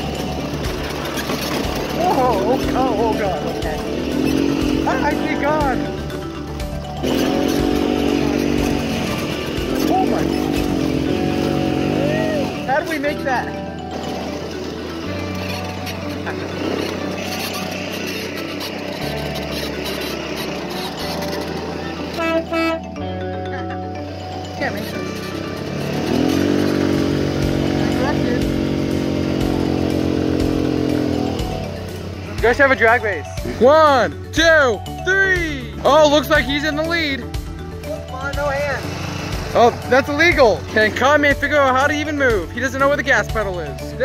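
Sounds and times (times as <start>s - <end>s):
atv engine running: 0.0s - 44.0s.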